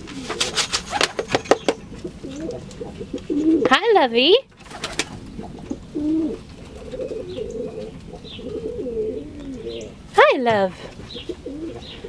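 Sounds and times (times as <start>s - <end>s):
pigeons cooing: 0.0s - 4.0s, 4.6s - 10.1s, 10.8s - 12.0s.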